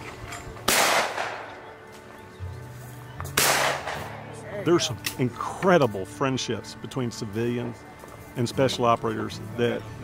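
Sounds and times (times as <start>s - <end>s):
shotgun shot: 0.7s - 1.6s, 3.4s - 4.2s.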